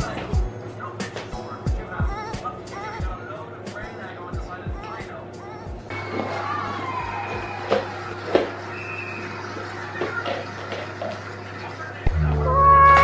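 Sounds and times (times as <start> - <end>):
faint television music: 0.0 - 13.0.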